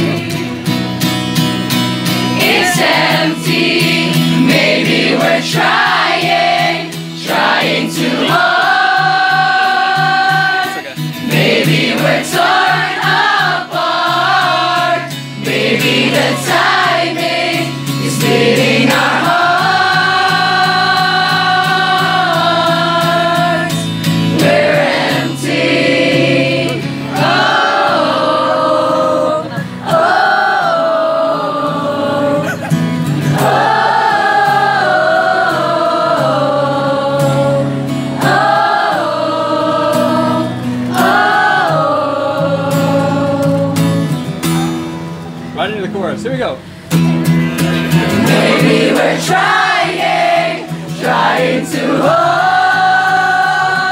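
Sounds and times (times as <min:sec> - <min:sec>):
crowd singing a pop-rock song: 0:00.0 - 0:44.7, 0:47.4 - 0:53.9.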